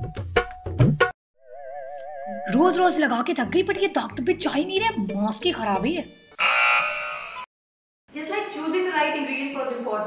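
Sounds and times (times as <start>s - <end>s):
game show buzzer: 6.4s - 7.5s.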